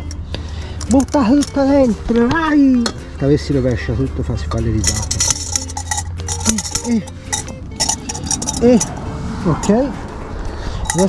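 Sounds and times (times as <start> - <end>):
metal pan clinking against pot: 4.8 - 8.9.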